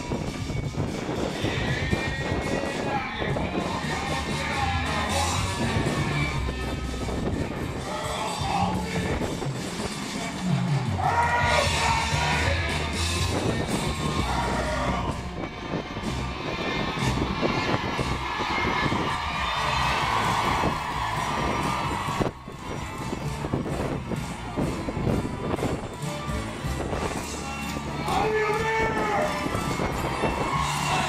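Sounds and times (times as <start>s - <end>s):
crowd screaming and cheering: 0.0s - 31.0s
live pop music with heavy bass: 0.0s - 31.0s.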